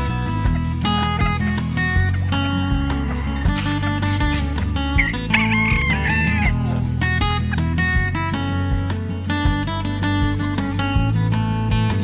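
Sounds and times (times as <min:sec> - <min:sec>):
acoustic guitar music: 0:00.0 - 0:12.0
rooster crowing: 0:05.0 - 0:06.7.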